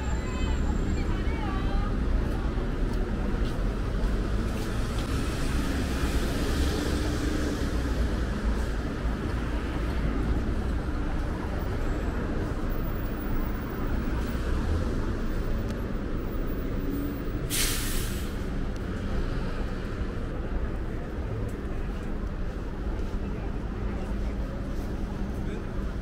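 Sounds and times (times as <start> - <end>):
city traffic: 0.0 - 26.0
bus air brakes hissing: 17.3 - 18.6.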